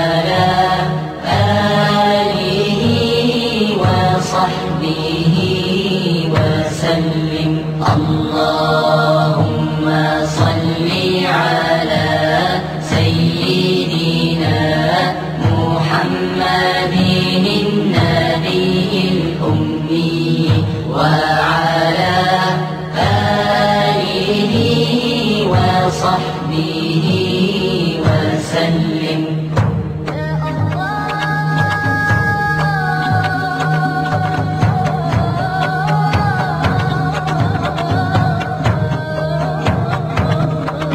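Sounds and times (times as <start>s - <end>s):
person chanting melodically: 0.0s - 40.9s.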